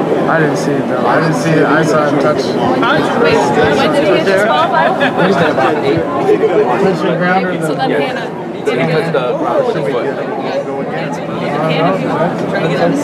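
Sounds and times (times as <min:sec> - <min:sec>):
overlapping chatter in echoing hall: 0:00.0 - 0:13.0.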